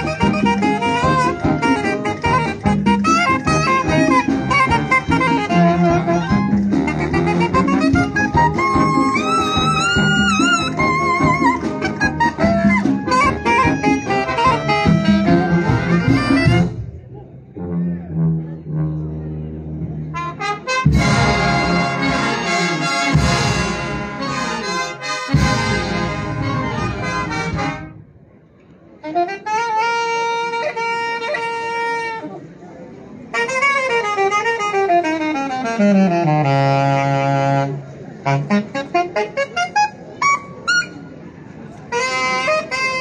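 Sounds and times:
brass band playing: 0:00.0 - 0:28.2, 0:29.0 - 0:32.4, 0:33.3 - 0:41.1, 0:41.8 - 0:43.0.

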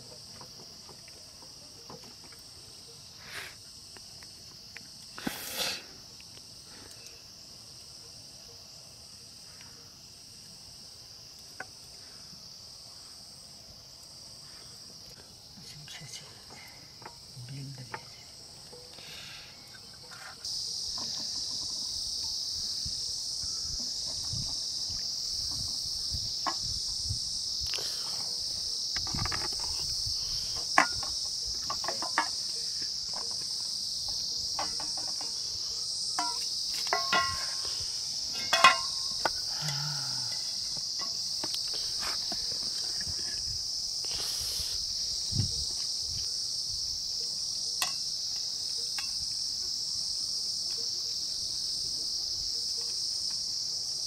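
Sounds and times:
high-pitched insect chorus: 0:00.0 - 0:54.0
metal pots and plates clinking: 0:36.2 - 0:37.6, 0:38.3 - 0:39.1.

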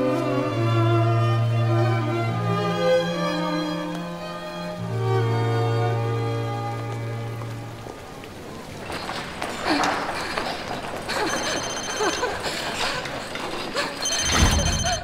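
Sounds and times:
string music: 0:00.0 - 0:09.6
telephone ringing: 0:11.2 - 0:12.9, 0:13.9 - 0:15.0.

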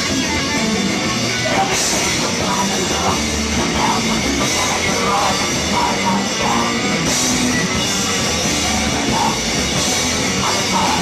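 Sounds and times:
drum kit and cymbals: 0:00.0 - 0:11.0
rock band playing heavy music: 0:00.0 - 0:11.0.

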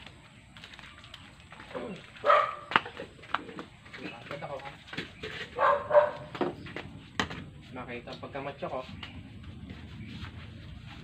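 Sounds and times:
dog barking: 0:02.2 - 0:02.8, 0:05.6 - 0:06.4.

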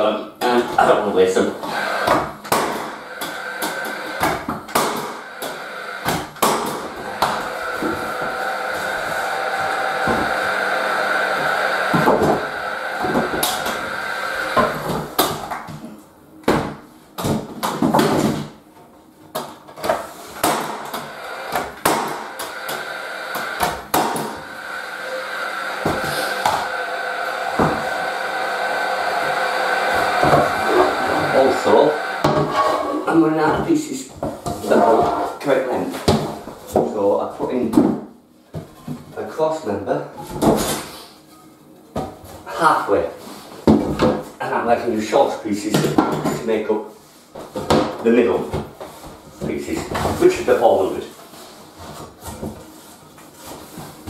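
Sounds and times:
nail gun firing: 0:02.0 - 0:03.0, 0:03.6 - 0:06.8, 0:20.4 - 0:24.4.

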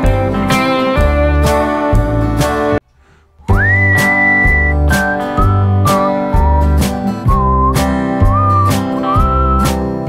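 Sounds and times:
strummed guitar: 0:00.0 - 0:02.8, 0:03.4 - 0:10.0
whistled melody: 0:03.4 - 0:10.0.

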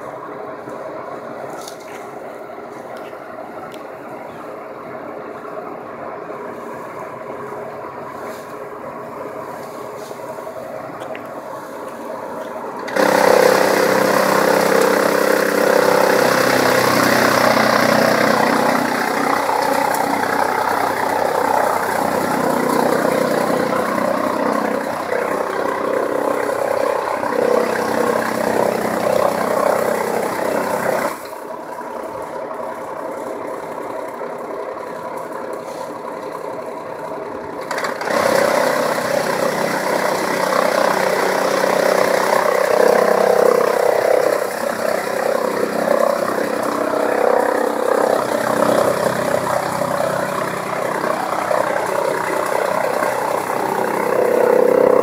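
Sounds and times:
chaff cutter with blower running: 0:06.6 - 0:55.0.

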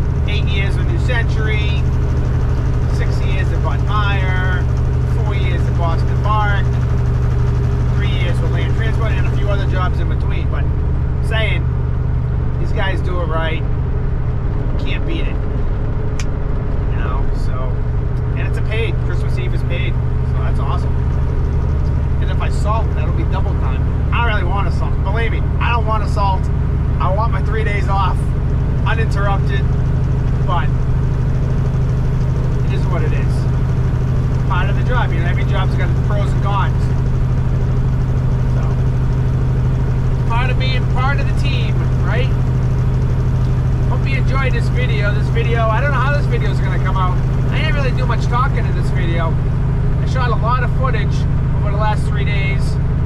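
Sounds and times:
truck diesel engine droning: 0:00.0 - 0:53.0.

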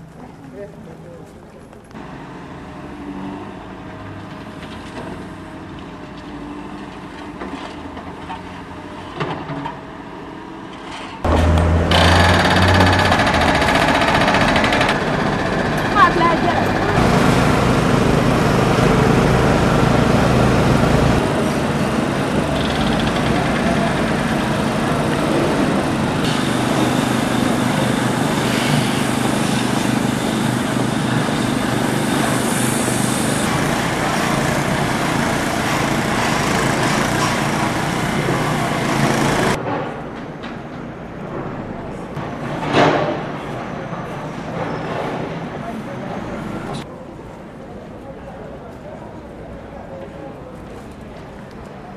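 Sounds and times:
construction machinery running: 0:01.9 - 0:42.8
voices: 0:15.7 - 0:17.0.

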